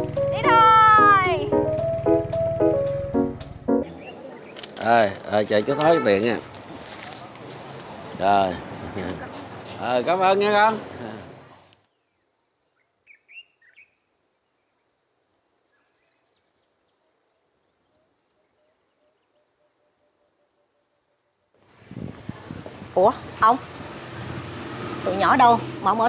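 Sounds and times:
plucked background music: 0.0s - 3.9s
faint bird chirps: 11.8s - 15.0s.

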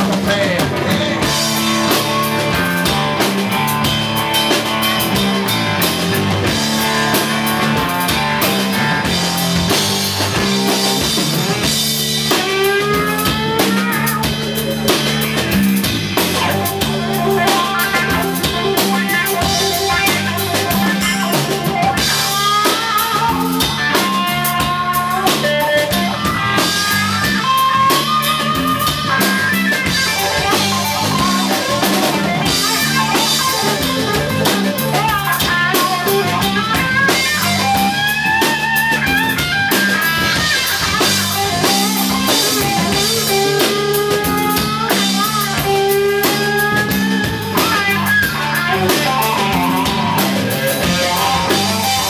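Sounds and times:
drum kit: 0.0s - 52.0s
electric guitars: 0.0s - 52.0s
guitar slides: 0.0s - 52.0s
low repeating riff: 0.0s - 52.0s.

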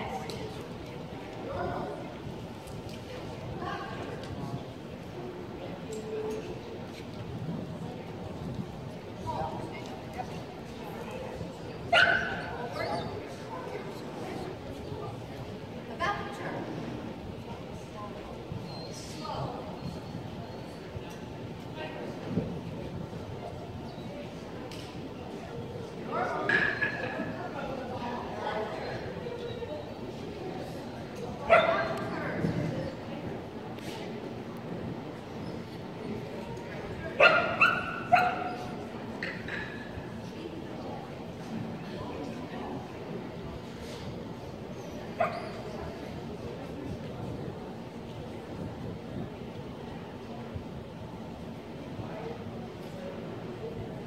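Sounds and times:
steady background noise: 0.0s - 54.0s
dog barking in echoing hall: 11.9s - 12.6s, 31.4s - 32.1s, 37.2s - 38.7s
dog barking: 37.2s - 38.6s.

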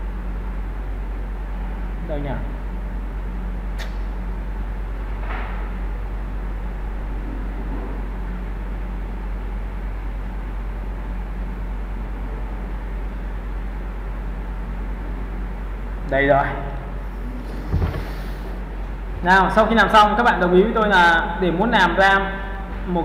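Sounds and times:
low electrical hum with hiss: 0.0s - 23.0s.

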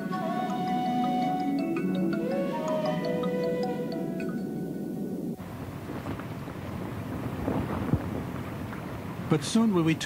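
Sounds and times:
wind buffeting microphone: 0.0s - 10.0s
cloth flags flapping: 5.4s - 9.4s.

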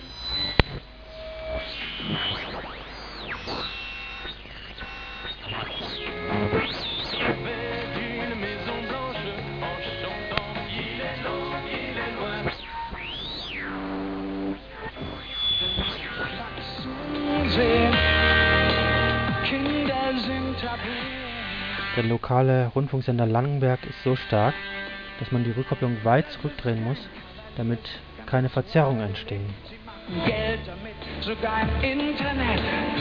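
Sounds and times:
gliding radio whistles: 0.0s - 7.6s, 9.6s - 19.2s
radio music snatches: 0.0s - 33.0s.

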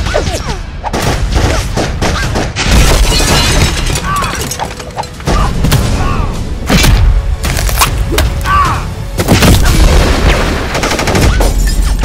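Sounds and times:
glass shattering: 2.7s - 5.2s
people shouting: 8.3s - 9.0s.

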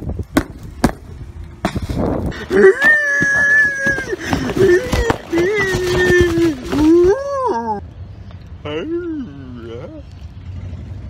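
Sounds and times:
wind rumble on microphone: 0.0s - 7.4s
hands handling cardboard box: 2.7s - 7.2s.

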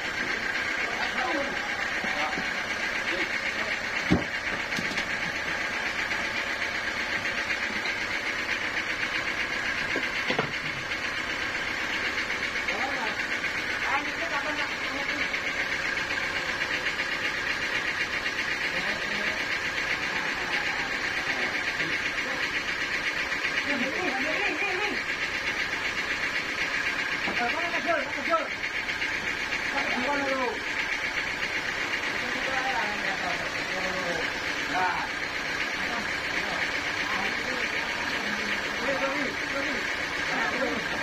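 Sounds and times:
wooden logs knocking: 4.0s - 5.2s.

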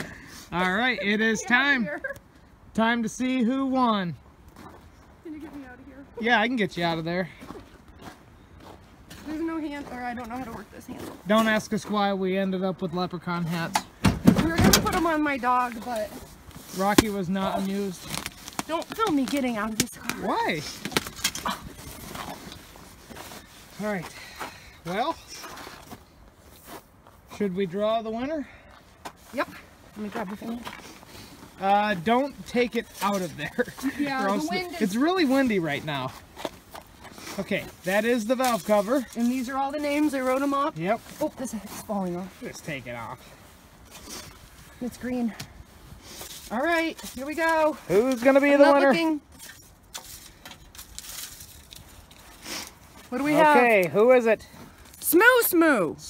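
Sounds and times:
man speaking: 0.5s - 1.9s, 31.6s - 36.2s, 53.1s - 54.4s
rustling and handling noise: 14.4s - 24.1s, 28.8s - 55.4s.

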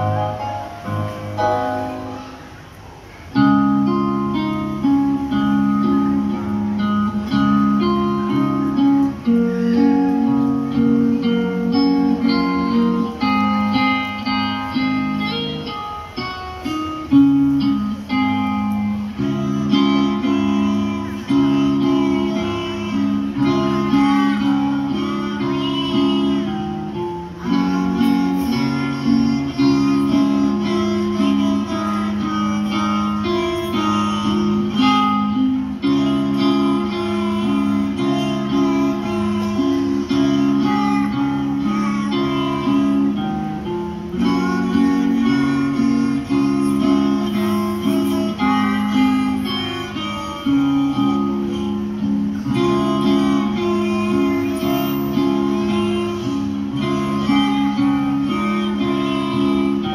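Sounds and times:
music backing track: 0.0s - 59.9s.

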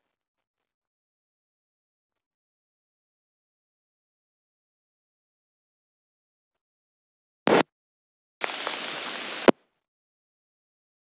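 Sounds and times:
hiss: 8.4s - 9.5s
loud crackle: 8.4s - 9.6s.

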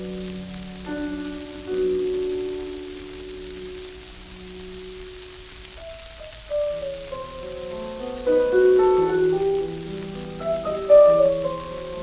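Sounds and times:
record surface hiss: 0.0s - 12.0s
solo piano: 0.0s - 12.0s.

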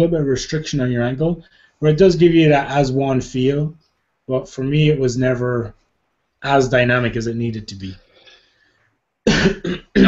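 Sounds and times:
man coughing: 9.2s - 10.0s.

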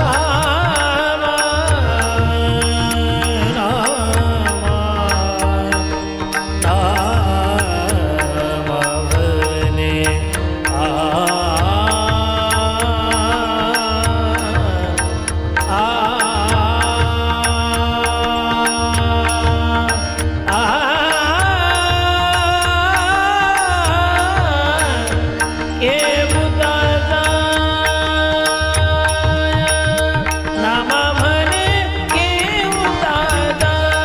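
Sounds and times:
man singing: 0.0s - 34.0s.

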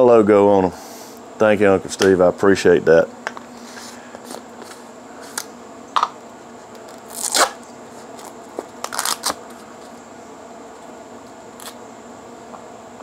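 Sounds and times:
plastic seal crinkling and tearing: 8.2s - 9.6s.

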